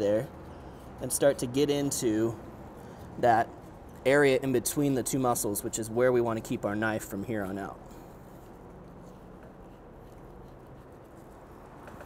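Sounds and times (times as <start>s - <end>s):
faint background hum: 0.0s - 12.0s.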